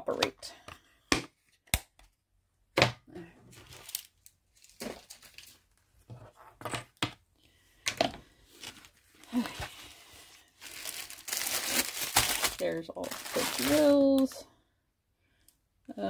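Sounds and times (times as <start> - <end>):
canvas crinkling and rustling: 8.5 - 14.2.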